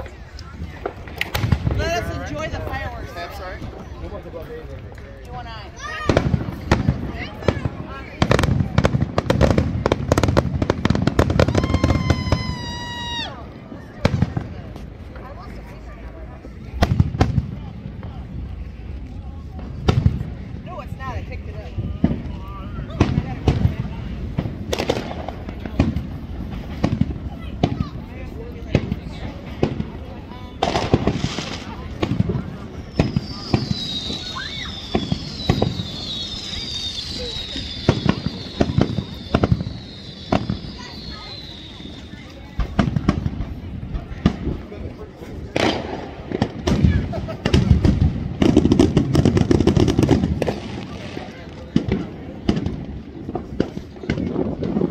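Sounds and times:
fireworks bursting and crackling: 0.0s - 54.9s
firework whistles falling in pitch: 11.4s - 13.4s, 32.6s - 42.8s.

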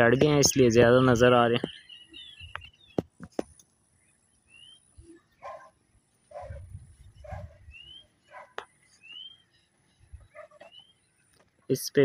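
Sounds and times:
rising bird chirps: 1.5s - 3.2s, 3.9s - 11.4s
faint dog barks: 5.4s - 7.7s, 8.3s - 8.6s, 10.3s - 10.7s.

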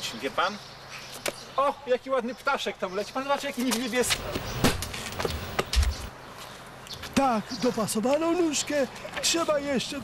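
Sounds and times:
body thumping onto pavement: 3.7s - 6.1s.

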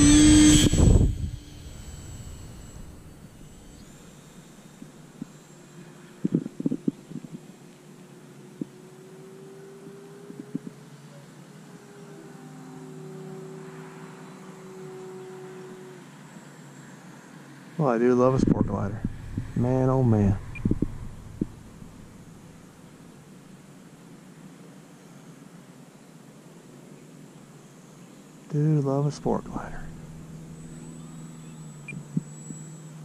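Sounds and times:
model plane motor whining: 0.0s - 7.4s, 11.5s - 16.5s, 29.4s - 33.0s.

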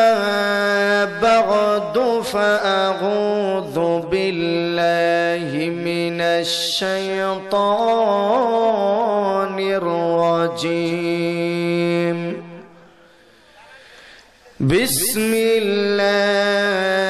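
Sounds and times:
man chanting into microphone: 0.0s - 13.0s, 14.6s - 17.0s.

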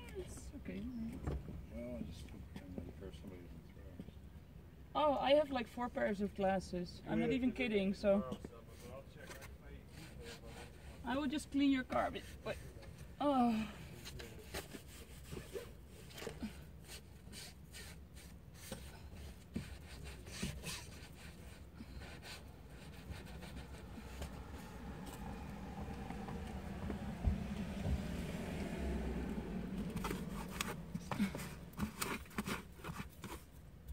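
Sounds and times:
things handled in a car: 8.4s - 33.9s.

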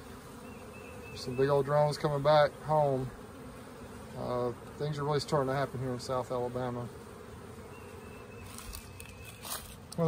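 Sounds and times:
honey bees buzzing: 0.0s - 10.0s.

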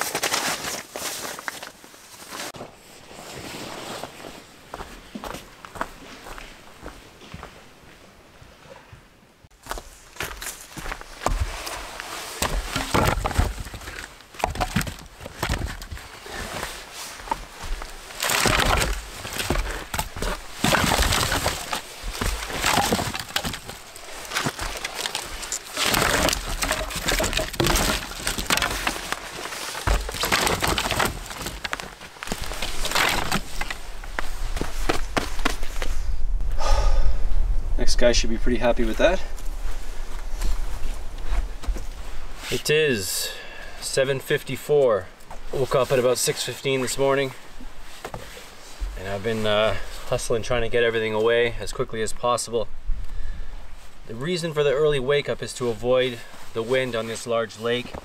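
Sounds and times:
twigs rustling: 9.6s - 36.0s
dry branches cracking and snapping: 12.4s - 16.4s, 17.2s - 35.8s.

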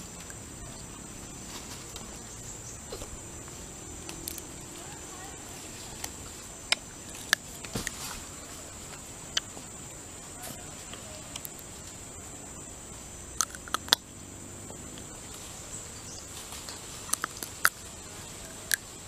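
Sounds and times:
high-pitched insect drone: 0.0s - 19.0s
orangutan chewing and lip smacking: 9.2s - 9.6s, 13.4s - 14.1s, 16.5s - 19.0s.

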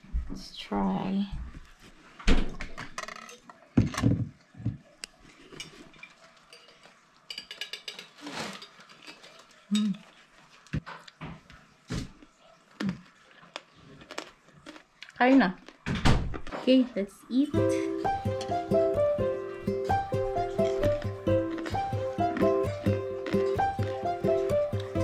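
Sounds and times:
dishes and utensils clicking: 5.5s - 10.0s.

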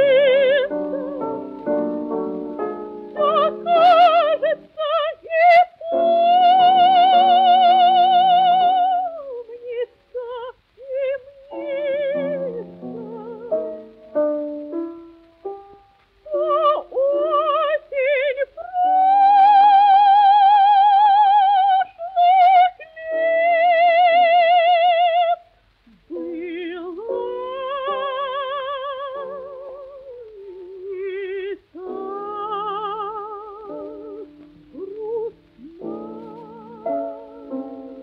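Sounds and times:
piano accompaniment: 0.0s - 9.0s, 11.3s - 25.4s, 26.2s - 38.0s
soprano singing with vibrato: 0.0s - 38.0s.

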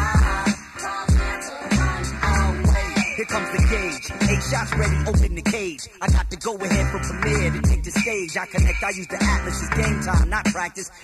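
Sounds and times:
rapping over a heavy bass beat: 0.0s - 11.0s.

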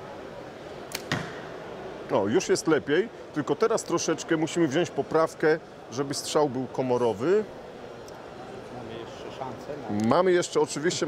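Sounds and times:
bow release and string crack: 0.9s - 1.4s.

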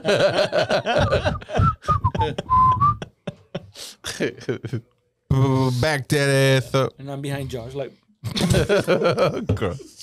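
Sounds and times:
person whistling: 1.2s - 3.1s.

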